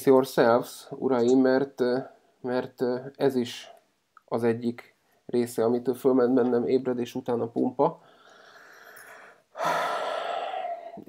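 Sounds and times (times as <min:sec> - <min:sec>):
person breathing: 0:08.0 - 0:11.0.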